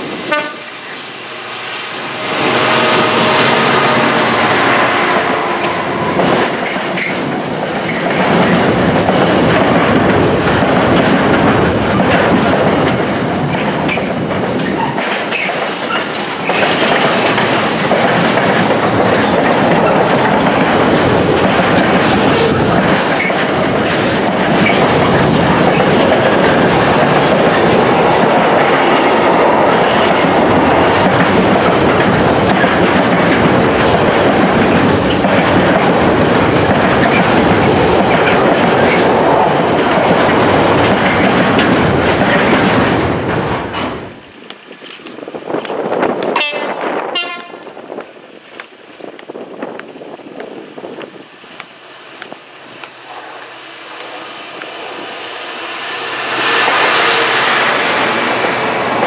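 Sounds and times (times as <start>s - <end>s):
freight train wheels on rails: 0.0s - 59.0s.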